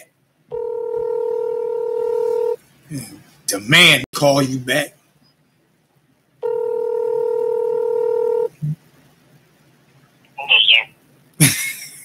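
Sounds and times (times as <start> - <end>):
telephone dial tone: 0.5 - 2.6, 6.4 - 8.5.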